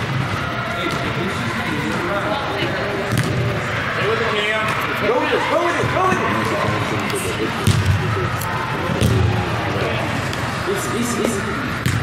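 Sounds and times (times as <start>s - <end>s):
overlapping voices in sports hall: 0.0s - 12.0s
ball being kicked: 3.1s - 3.5s, 7.6s - 8.0s, 8.9s - 9.3s, 11.8s - 12.0s.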